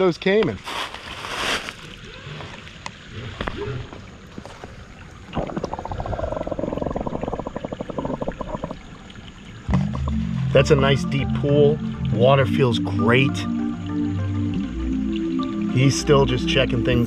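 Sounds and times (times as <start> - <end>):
crackling bubbling underwater: 1.2 - 15.8
muffled underwater pond water: 1.6 - 17.0.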